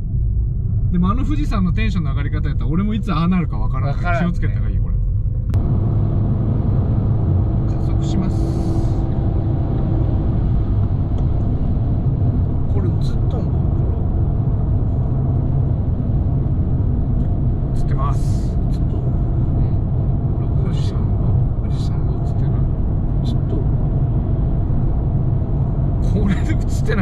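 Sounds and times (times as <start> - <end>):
car engine and road rumble: 0.0 - 27.0.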